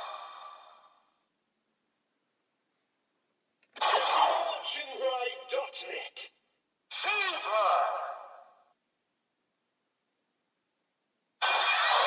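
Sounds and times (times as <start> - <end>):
toy electronic voice: 11.4 - 12.0.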